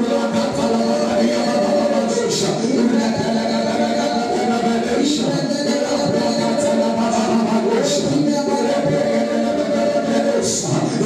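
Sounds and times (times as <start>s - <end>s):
group singing a worship song: 0.0s - 11.0s.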